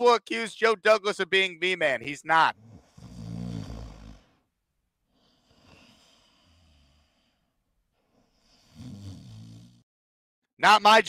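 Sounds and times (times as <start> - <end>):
man snoring: 2.5 - 4.5, 5.1 - 7.5, 8.2 - 9.9.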